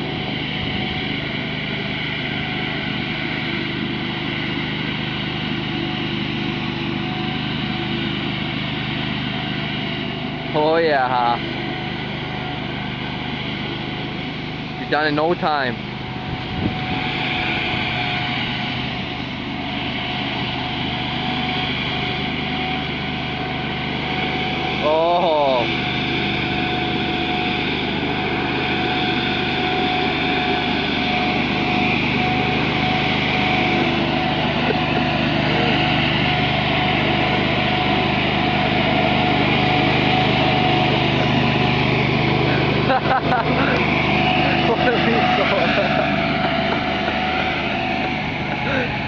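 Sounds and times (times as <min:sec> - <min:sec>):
leaf blower whine: 0:00.0 - 0:49.0
tractor engine drone: 0:00.0 - 0:49.0.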